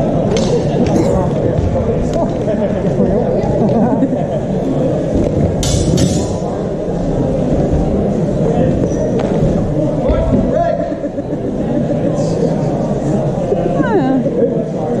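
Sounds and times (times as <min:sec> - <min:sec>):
voices echoing in sports hall: 0:00.0 - 0:15.0.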